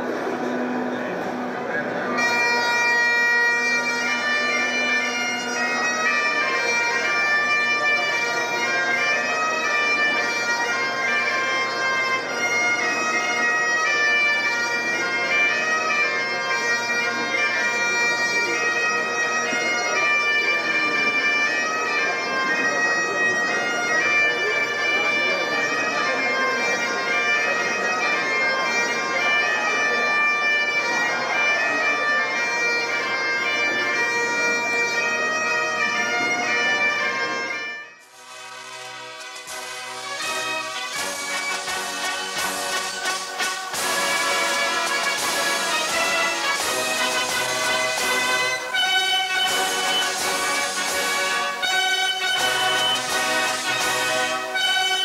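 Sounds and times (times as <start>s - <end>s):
bagpipes playing: 0.2s - 55.0s.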